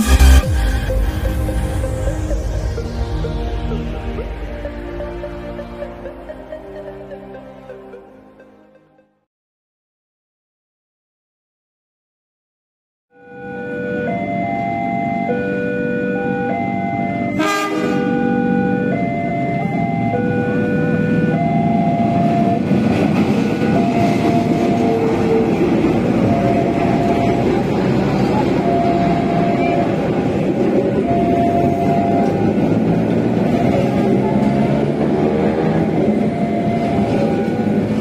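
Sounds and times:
train rumbling over rails: 0:00.0 - 0:08.0, 0:19.3 - 0:38.0
level crossing alarm tones: 0:00.0 - 0:09.2, 0:13.1 - 0:38.0
locomotive horn toot: 0:17.2 - 0:18.9.

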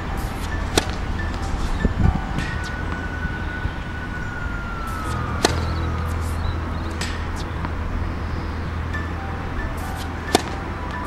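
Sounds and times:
faint high tone falling in pitch: 0:00.0 - 0:11.0
low outdoor rumble: 0:00.0 - 0:11.0
tennis ball struck by racket: 0:00.2 - 0:01.7, 0:05.0 - 0:07.8, 0:09.8 - 0:10.7.

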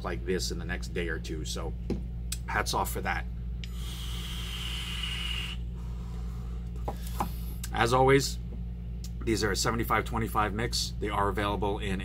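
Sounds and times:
air hissing through e-cigarette: 0:03.6 - 0:05.6
heated coil sizzling: 0:03.6 - 0:06.2
breathy exhale: 0:03.7 - 0:07.6.

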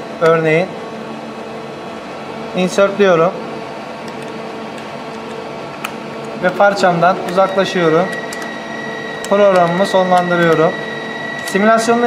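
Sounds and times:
fan hum: 0:00.0 - 0:12.0
keypad keys clicking: 0:04.1 - 0:08.6, 0:09.2 - 0:10.7.

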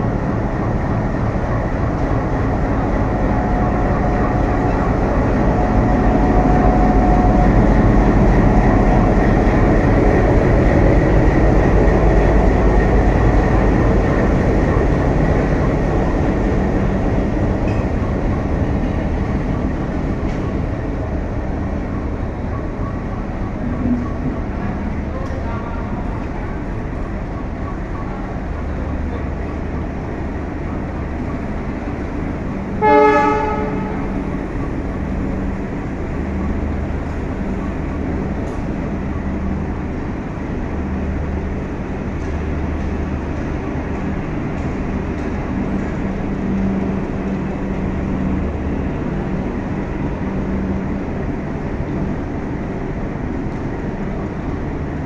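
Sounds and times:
diesel locomotive engine rumble: 0:00.0 - 0:55.0
train coaches rolling: 0:00.0 - 0:55.0
loud horn blast: 0:32.8 - 0:34.2.

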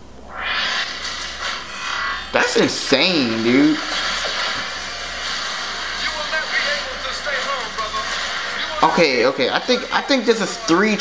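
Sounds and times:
faint music: 0:00.0 - 0:11.0
rushing sound effect swell: 0:00.1 - 0:06.6.

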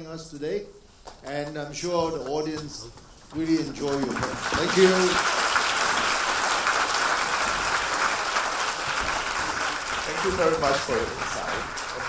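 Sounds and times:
audience applauding: 0:03.4 - 0:12.0.

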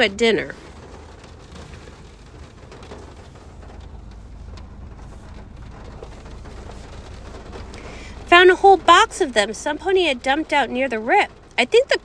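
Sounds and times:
low rumble: 0:00.0 - 0:11.6.

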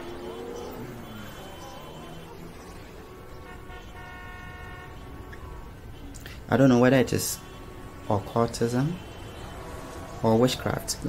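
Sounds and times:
faint steady pitched tone: 0:00.0 - 0:06.1.

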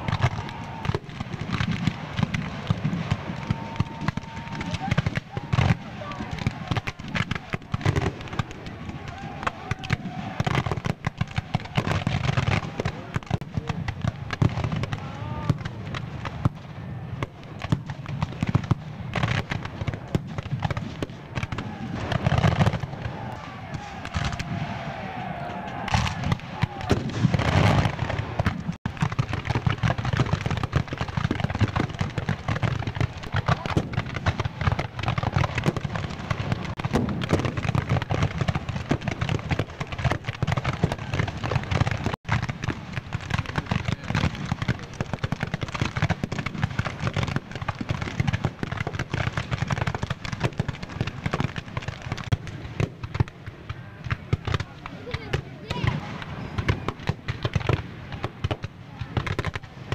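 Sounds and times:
distant voices shouting: 0:00.0 - 0:01.2, 0:02.7 - 0:13.2, 0:14.2 - 0:15.9, 0:21.3 - 0:28.2
musket fire crackle: 0:00.0 - 0:59.9.

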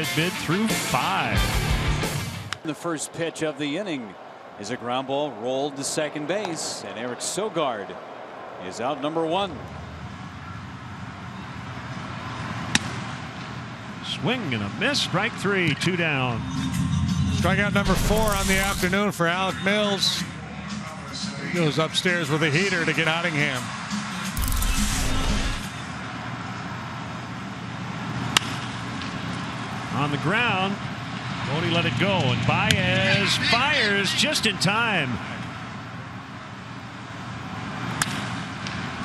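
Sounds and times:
ballpark background noise: 0:02.4 - 0:16.6, 0:25.7 - 0:39.0
low rumble: 0:16.3 - 0:19.1.

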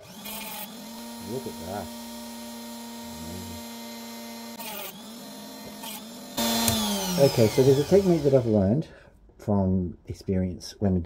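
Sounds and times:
rotary tool humming: 0:00.0 - 0:08.6
gritty cutting bursts: 0:00.0 - 0:08.8.

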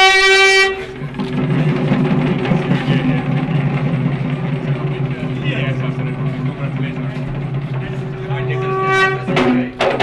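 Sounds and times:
horn-like wind instrument note: 0:00.0 - 0:01.0, 0:08.4 - 0:09.4
droning mix of music and voices: 0:00.8 - 0:10.0.

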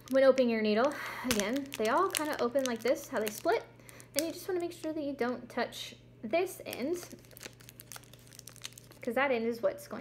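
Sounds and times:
peel pack crinkling open: 0:00.0 - 0:05.0, 0:06.6 - 0:09.1.

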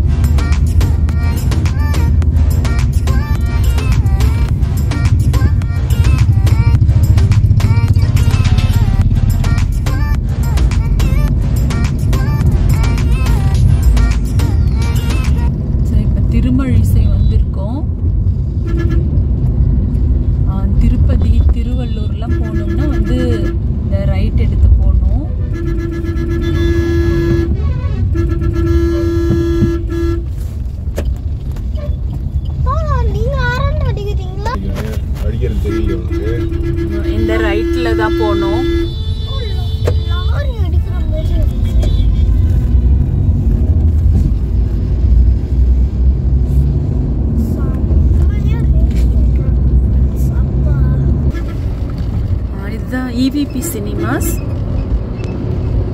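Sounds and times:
car road rumble: 0:00.0 - 0:55.9
heavy highway traffic: 0:00.0 - 0:55.9
vehicle horn blasts: 0:18.6 - 0:19.2, 0:21.8 - 0:23.8, 0:25.4 - 0:30.4, 0:35.0 - 0:42.9, 0:51.2 - 0:51.8.

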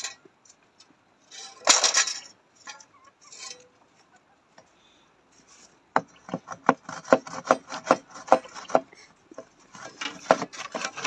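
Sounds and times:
hand saw cutting wood: 0:06.3 - 0:09.0, 0:09.6 - 0:11.0.

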